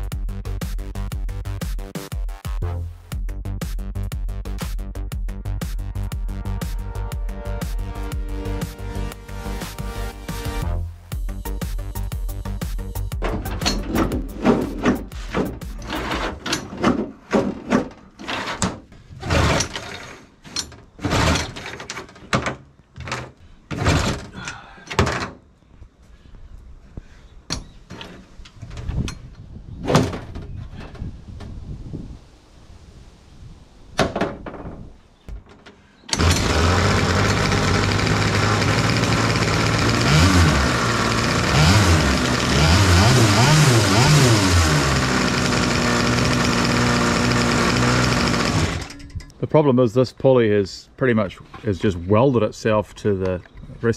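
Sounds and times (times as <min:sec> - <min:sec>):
sharp knocks and clatters: 0:13.1 - 0:24.3
two-stroke engine revving: 0:36.1 - 0:49.0.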